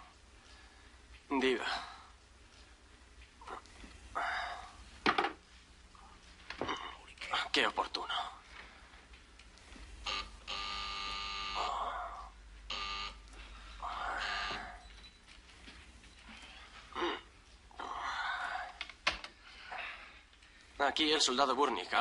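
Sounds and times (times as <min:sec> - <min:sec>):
electric buzzer ringing: 0:10.0 - 0:11.8, 0:12.7 - 0:13.2, 0:14.2 - 0:14.7.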